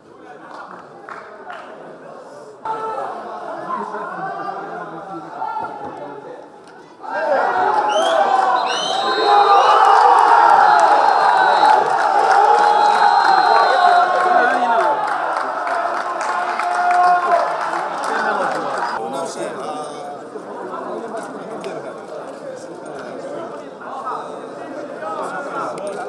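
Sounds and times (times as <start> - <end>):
crowd of men shouting and cheering: 2.6 - 6.2, 7.0 - 19.6.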